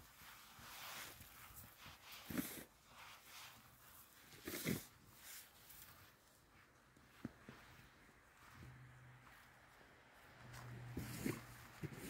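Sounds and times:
brush sweeping snow off car: 0.0s - 6.5s, 10.5s - 12.0s.

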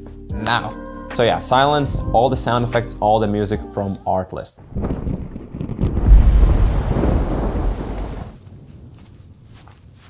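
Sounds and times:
thunder rumble: 4.6s - 9.0s.

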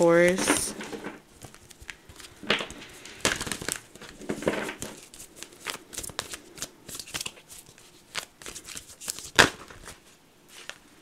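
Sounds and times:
cards being shuffled: 0.2s - 10.9s.

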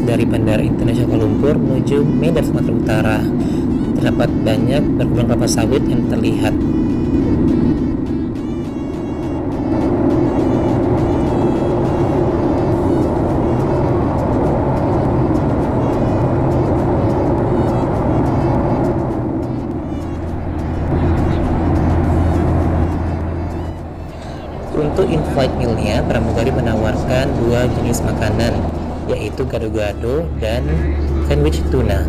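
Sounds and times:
airplane cabin engine noise: 0.0s - 32.0s
background music: 0.0s - 32.0s
low steady hum: 0.0s - 32.0s.

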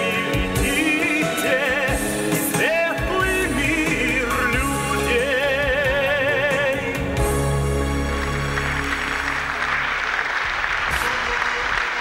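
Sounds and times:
audience applauding: 8.0s - 12.0s.

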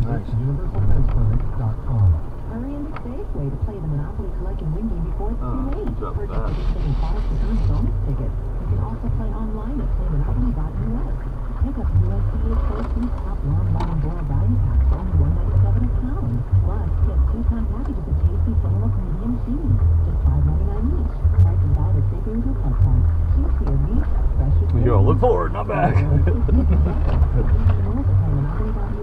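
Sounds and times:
car engine low rumble: 0.0s - 29.0s.

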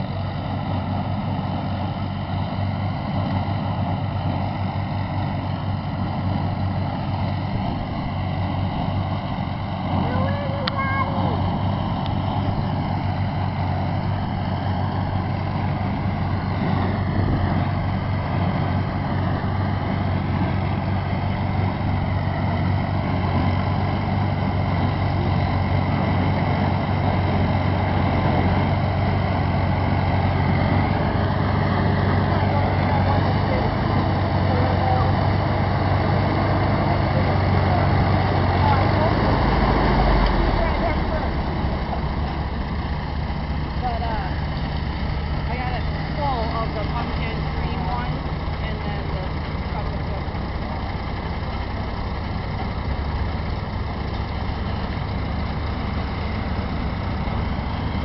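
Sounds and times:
tractor engine running: 0.0s - 58.0s.

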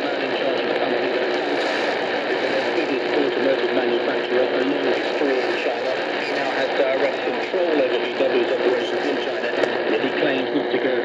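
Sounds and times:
radio speech from speaker: 0.0s - 11.0s
static hiss: 0.0s - 11.0s.

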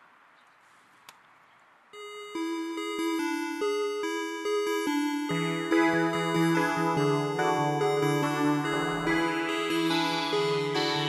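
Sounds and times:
electronic beeping melody: 2.0s - 11.0s.

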